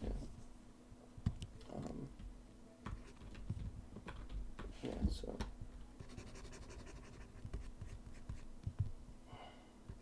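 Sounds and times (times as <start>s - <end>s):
stylus scratching on tablet: 6.0s - 8.5s.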